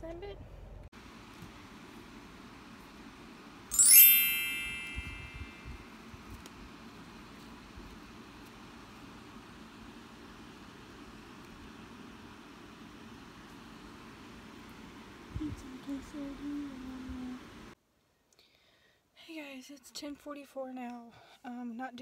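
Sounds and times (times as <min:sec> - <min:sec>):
bright ringing ding: 0:03.7 - 0:05.7.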